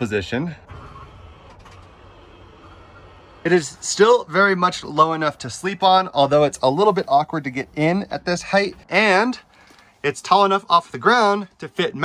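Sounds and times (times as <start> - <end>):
electric motor of bed running: 0.7 - 3.5.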